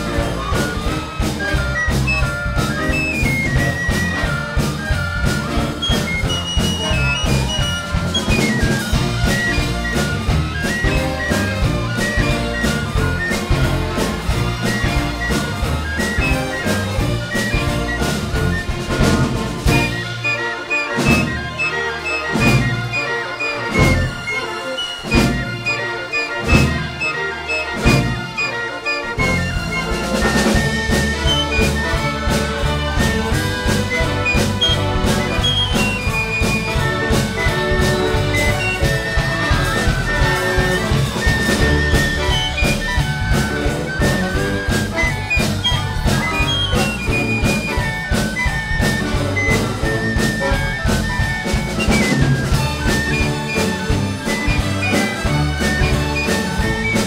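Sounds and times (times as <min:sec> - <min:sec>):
drum hits: 0:00.0 - 0:23.1, 0:26.4 - 0:28.5, 0:29.1 - 0:57.0
jazz band playing: 0:00.0 - 0:57.0
trumpet melody: 0:00.0 - 0:57.0.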